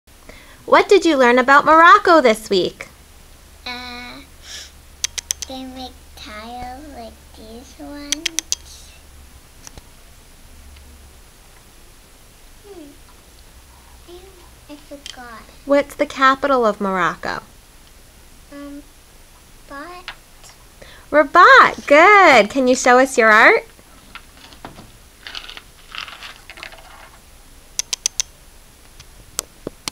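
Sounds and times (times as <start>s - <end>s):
cardboard rustling: 23.9s - 27.2s.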